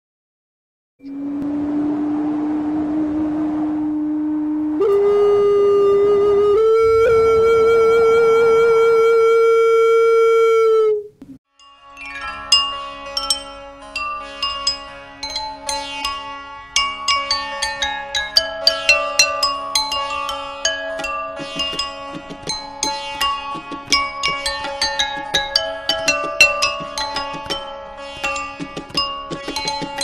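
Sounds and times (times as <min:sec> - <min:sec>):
breathy vessel flute notes: 0:01.0 - 0:11.2
ringing porcelain bowls struck: 0:11.6 - 0:30.0.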